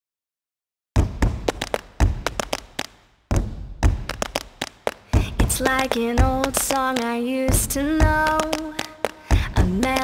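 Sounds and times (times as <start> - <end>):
kick drum thumps: 1.0 - 6.8, 7.5 - 10.0
percussive clicks and taps: 1.0 - 10.0.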